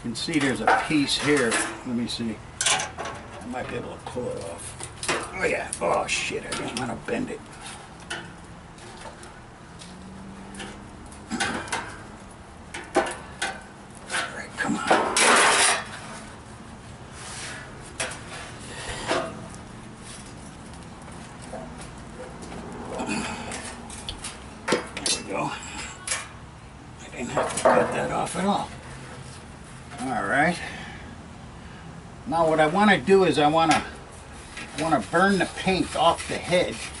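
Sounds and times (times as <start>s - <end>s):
metal scraping: 0.2s - 26.4s, 33.3s - 37.0s
sheet metal clanking: 10.5s - 16.1s.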